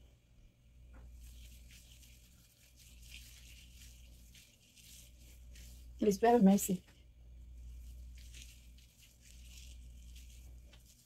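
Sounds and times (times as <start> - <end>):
fingers rustling through dry hair: 0.9 - 11.0.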